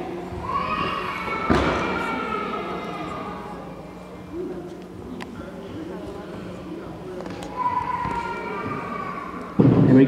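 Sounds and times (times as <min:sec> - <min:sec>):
echoing thud: 0:01.4 - 0:02.1.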